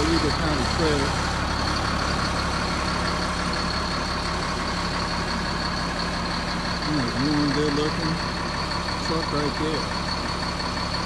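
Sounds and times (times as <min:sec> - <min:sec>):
hydraulic hoist whine: 0:00.0 - 0:11.0
truck engine running: 0:00.0 - 0:11.0.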